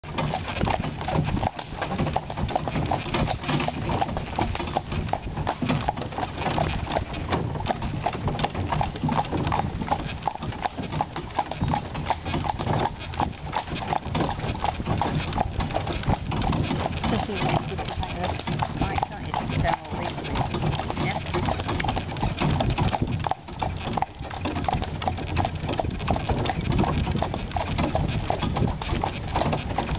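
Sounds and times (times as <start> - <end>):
carriage wheels rumbling: 0.0 - 29.9
hooves clip-clopping on gravel: 0.0 - 29.9.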